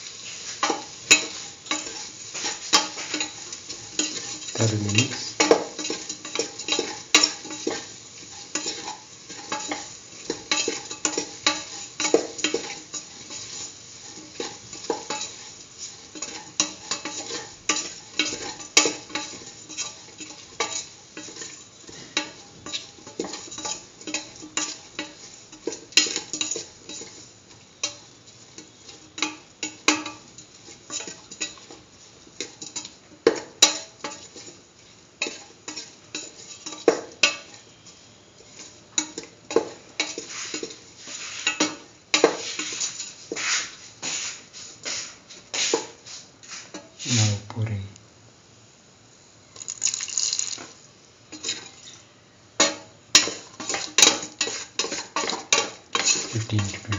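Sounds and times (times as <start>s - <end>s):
faint sizzle of vegetables in oil: 0.0s - 56.9s
spatula scraping steel pot: 0.5s - 27.2s, 52.6s - 56.9s.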